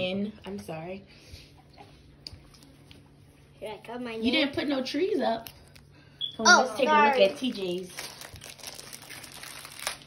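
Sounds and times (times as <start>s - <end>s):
rustling and crinkling: 7.1s - 10.0s.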